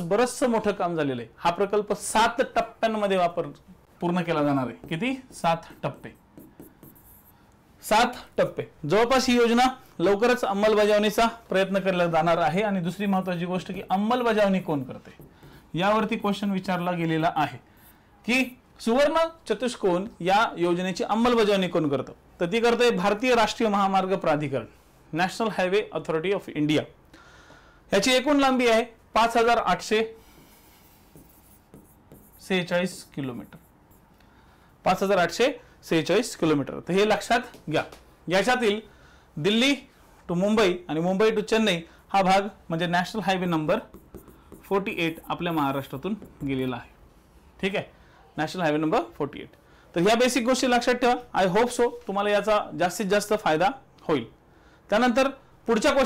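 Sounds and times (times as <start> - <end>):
pen scratching and tapping on screen: 4.5 - 7.6, 14.2 - 18.0, 30.2 - 34.2, 43.3 - 46.8.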